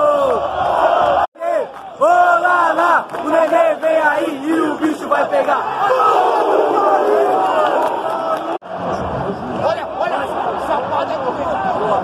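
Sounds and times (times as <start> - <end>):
crowd singing and shouting: 1.1 - 7.6.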